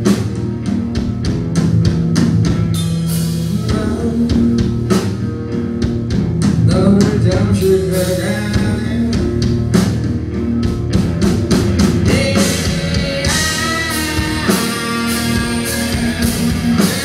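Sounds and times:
bass guitar: 0:00.0 - 0:17.0
drum kit beat: 0:00.0 - 0:17.0
electric guitar: 0:00.0 - 0:17.0.

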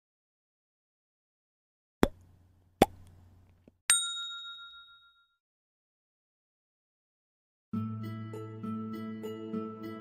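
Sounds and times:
bright bell ding: 0:03.9 - 0:05.4.

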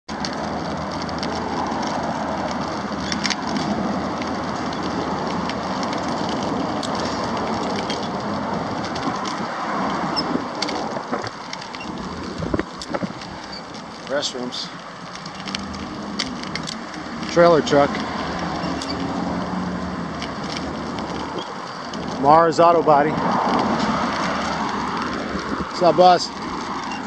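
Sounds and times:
road traffic: 0:00.0 - 0:27.0.

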